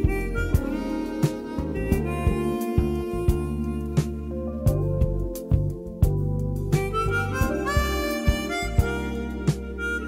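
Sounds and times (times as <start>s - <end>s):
bass: 0.0s - 10.0s
harmonica melody: 0.0s - 10.0s
light percussion: 0.0s - 10.0s.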